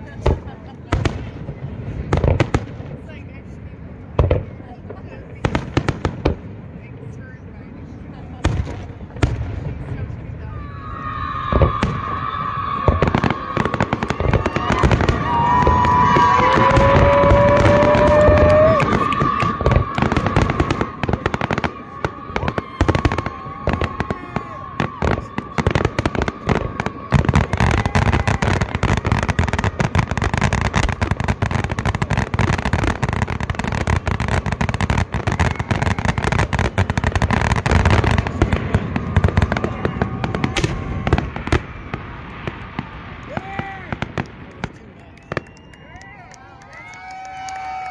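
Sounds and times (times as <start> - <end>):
fireworks bursts and crackles: 0.0 - 47.9
fireworks whistling: 8.4 - 46.5.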